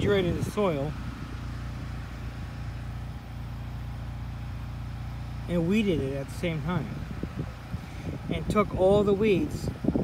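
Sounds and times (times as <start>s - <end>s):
small engine humming: 0.0s - 10.0s.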